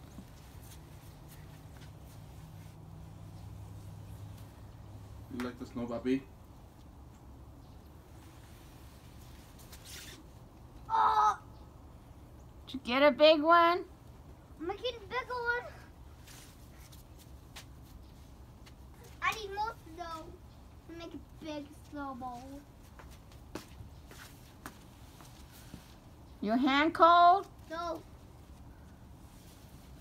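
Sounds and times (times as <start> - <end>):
faint steady background noise: 0.0 - 30.0.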